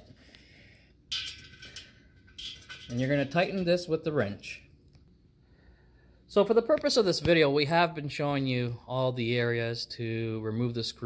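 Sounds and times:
metal screw scraping and clinking: 0:01.1 - 0:03.9.

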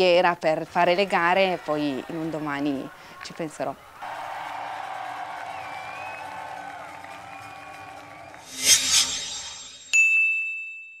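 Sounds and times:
crowd noise: 0:00.6 - 0:09.3
quick whooshes: 0:08.4 - 0:10.0
bright electronic chime: 0:08.4 - 0:10.8.

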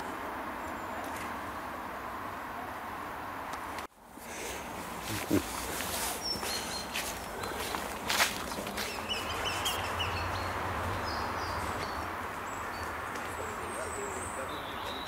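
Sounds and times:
high bird calls: 0:04.3 - 0:15.0.

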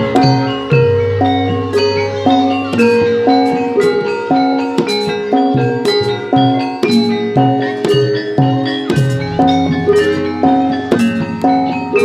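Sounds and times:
gamelan metallophones and gongs: 0:00.0 - 0:12.0.

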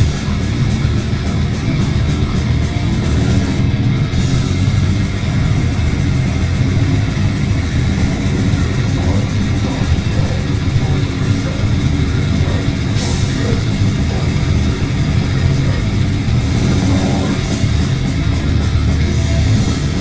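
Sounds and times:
grindcore band playing live: 0:00.0 - 0:20.0.

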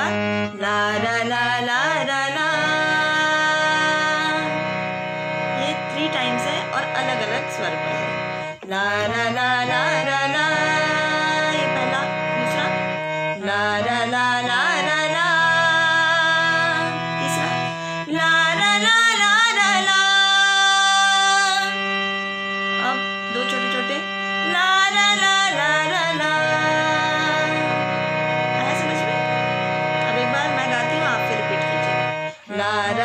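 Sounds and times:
sustained instrumental chords: 0:00.0 - 0:33.0
woman singing wordless refrain: 0:00.0 - 0:33.0.

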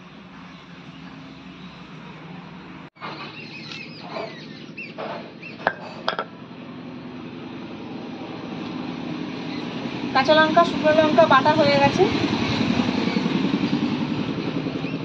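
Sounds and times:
birds chirping: 0:00.1 - 0:07.2, 0:11.6 - 0:15.0
stone-on-stone scraping: 0:05.6 - 0:06.3
stone knocks: 0:05.7 - 0:06.3.

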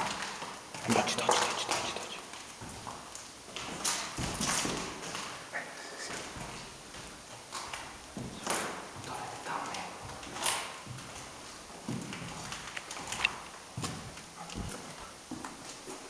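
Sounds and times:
footsteps on hard floor: 0:10.0 - 0:13.1, 0:13.7 - 0:16.0.

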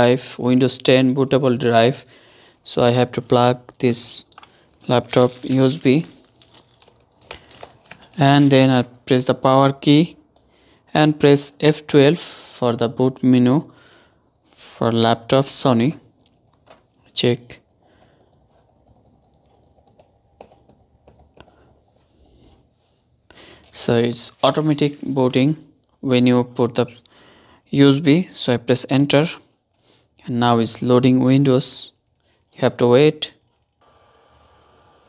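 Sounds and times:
rustles of handling: 0:03.1 - 0:09.0, 0:23.6 - 0:25.7.

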